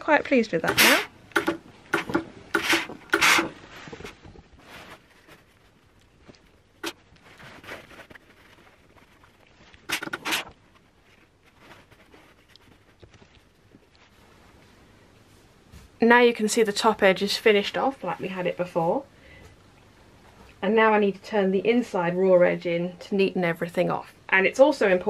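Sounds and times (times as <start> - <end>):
silk fabric rustling: 2.5 - 16.2.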